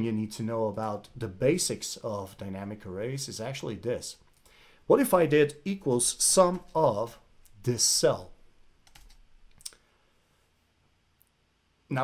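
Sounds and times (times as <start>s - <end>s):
computer mouse or key clicks: 8.8s - 9.8s.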